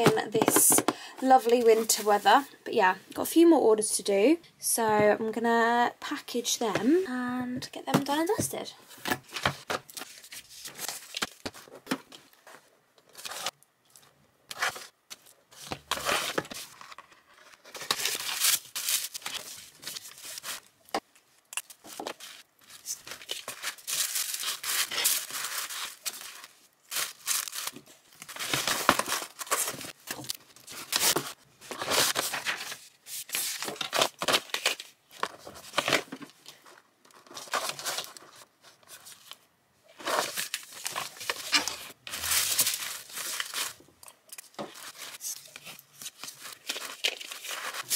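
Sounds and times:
tissue paper crinkling: 15.9s - 20.7s, 21.9s - 39.4s, 40.0s - 43.8s, 44.5s - 47.9s.

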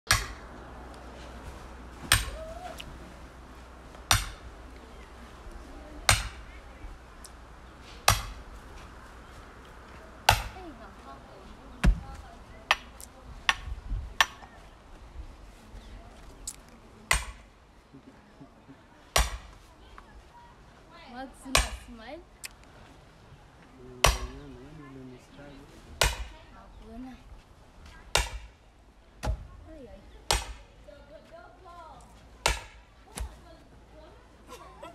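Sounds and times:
sledgehammer striking steel wedge: 0.1s - 0.4s, 4.1s - 4.4s, 8.0s - 8.4s, 28.1s - 28.6s.

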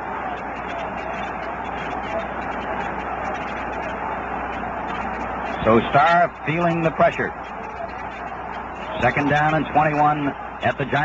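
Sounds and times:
muffled stadium crowd din: 0.0s - 11.0s.

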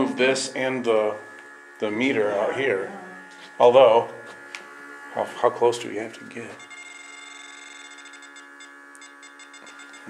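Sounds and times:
pump humming: 0.0s - 10.0s
high-pitched electronic beeping: 6.6s - 10.0s.

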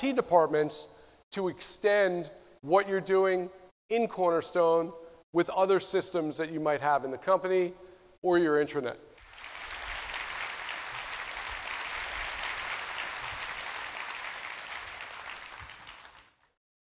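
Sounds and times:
audience applauding: 9.2s - 16.6s.

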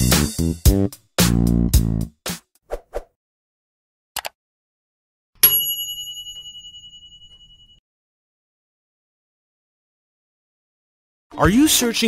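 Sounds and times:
notification bell chime: 5.4s - 7.8s.

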